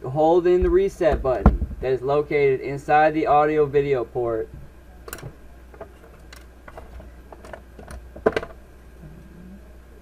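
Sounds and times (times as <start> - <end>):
steady low hum: 0.0 - 10.0
small clicks and knocks: 5.1 - 8.6.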